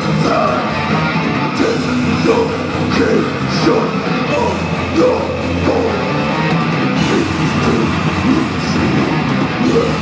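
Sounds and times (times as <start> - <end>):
harsh shouted vocals: 0.0 - 10.0
heavy metal band playing: 0.0 - 10.0.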